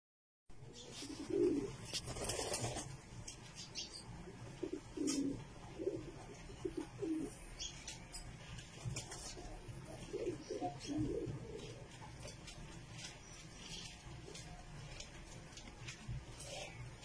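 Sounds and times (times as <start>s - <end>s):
pigeons cooing: 0.6s - 2.9s, 4.4s - 12.4s
rustles: 0.7s - 3.8s.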